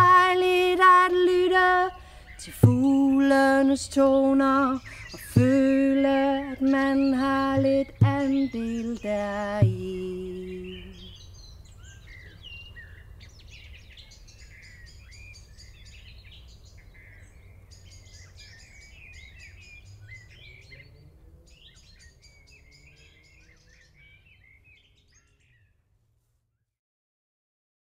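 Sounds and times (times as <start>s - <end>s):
birds singing and calling: 0.0s - 25.8s.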